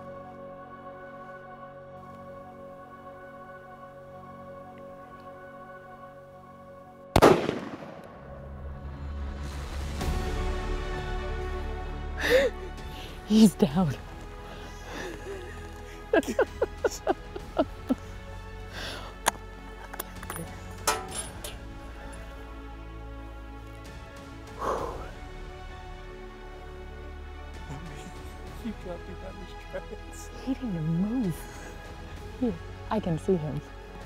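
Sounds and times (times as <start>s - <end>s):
soft background music: 0.0s - 34.0s
rifle shot: 7.2s - 8.4s.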